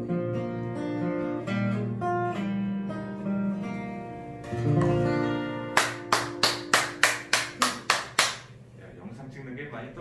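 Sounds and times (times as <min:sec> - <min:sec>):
acoustic guitar chord: 0:00.0 - 0:07.3
hands clapping: 0:04.7 - 0:05.0, 0:05.7 - 0:08.6.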